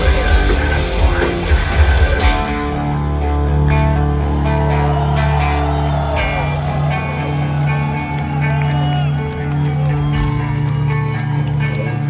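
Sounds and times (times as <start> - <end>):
distorted electric guitars: 0.0 - 12.0
heavy metal band playing live: 0.0 - 12.0.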